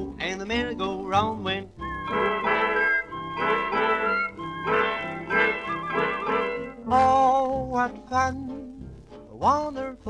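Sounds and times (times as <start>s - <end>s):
swing dance band playing: 0.0s - 7.9s.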